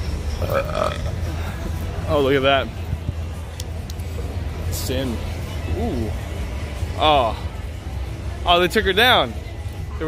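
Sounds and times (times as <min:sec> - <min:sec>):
street traffic rumble: 0:00.0 - 0:10.0
throaty vocal sound: 0:00.4 - 0:01.6.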